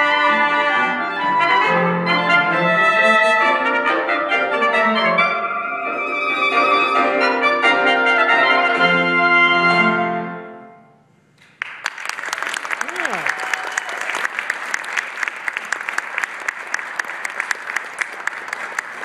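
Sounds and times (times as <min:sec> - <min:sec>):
clarinet trumpet and piano chord: 0:00.0 - 0:10.8
audience applauding: 0:11.4 - 0:19.0.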